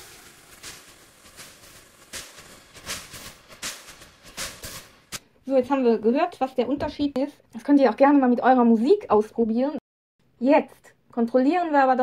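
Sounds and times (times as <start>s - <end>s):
faint thin hiss of music: 0.0s - 0.9s.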